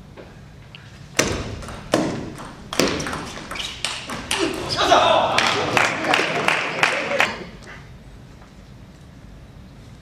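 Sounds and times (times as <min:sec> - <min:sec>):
table tennis ball hits: 0:01.1 - 0:04.7.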